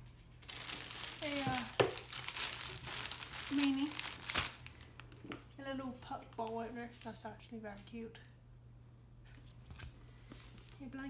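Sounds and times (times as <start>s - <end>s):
plastic packaging crinkling: 0.4s - 5.5s, 6.1s - 7.9s, 9.4s - 10.8s.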